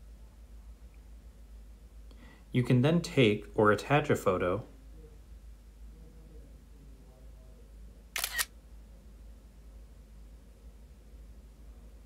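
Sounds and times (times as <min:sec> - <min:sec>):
camera shutter double click: 0:08.2 - 0:08.5.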